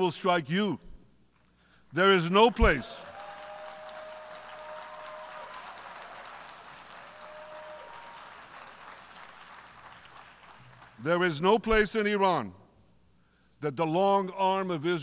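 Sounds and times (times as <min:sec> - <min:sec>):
audience applause: 0:02.6 - 0:11.0.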